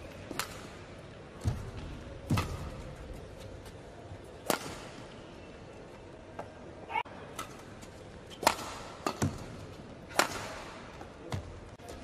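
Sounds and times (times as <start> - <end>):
racket hitting shuttlecock: 0.3 - 0.8, 1.4 - 3.3, 4.4 - 5.0, 7.3 - 11.6.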